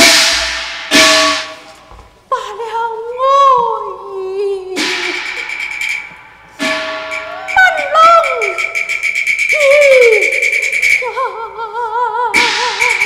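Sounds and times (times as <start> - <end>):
sharp percussion strike: 4.8 - 11.0, 12.4 - 13.0
percussion roll: 4.8 - 11.1, 12.4 - 13.0
wailing pitch glides: 7.1 - 11.3.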